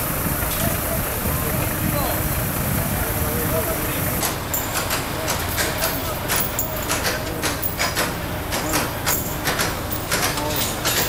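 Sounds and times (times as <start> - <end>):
steady low rumble: 0.0 - 4.2
sharp knocks and clatter: 4.2 - 11.0.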